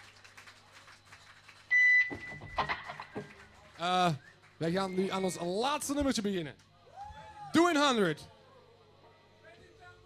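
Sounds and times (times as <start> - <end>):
voices in room: 3.2 - 10.0.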